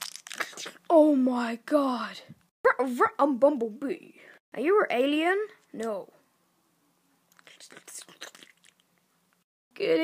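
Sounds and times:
faint whispering: 7.3 - 8.6.

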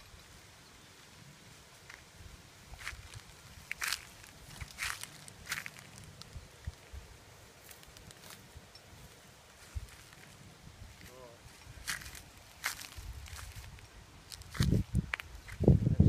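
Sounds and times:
footsteps on dry branches and leaves: 2.7 - 15.8
twigs snapping: 2.8 - 6.8, 7.6 - 8.4.

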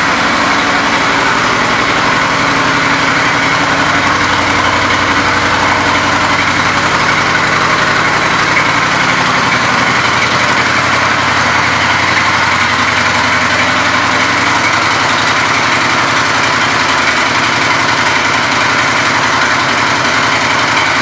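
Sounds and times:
motorcycle engine idling: 0.0 - 21.0.

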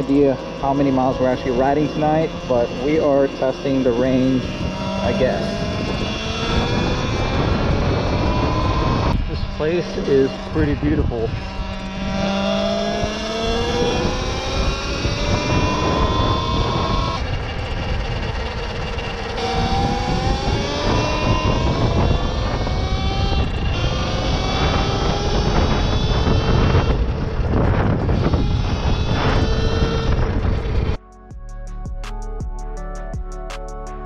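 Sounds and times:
electric motor whining: 0.0 - 31.0
wind rumble on microphone: 0.0 - 31.0.

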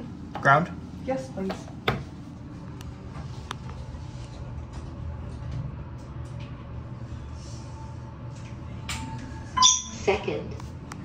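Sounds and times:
elevator low hum: 0.0 - 11.0.

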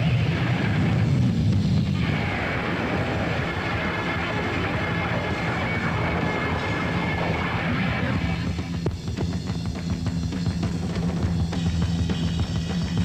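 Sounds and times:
distorted electric guitar: 0.0 - 13.0
high feedback whine: 0.0 - 13.0.

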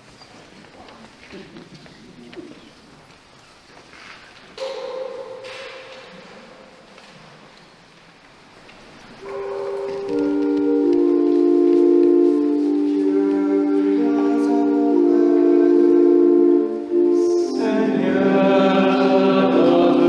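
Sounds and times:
organ chords: 9.2 - 20.0.

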